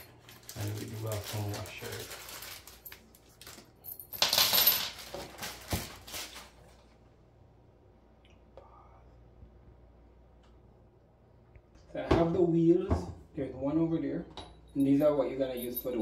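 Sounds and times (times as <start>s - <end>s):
metal hardware clinking on wood floor: 3.6s - 5.3s, 14.3s - 16.0s.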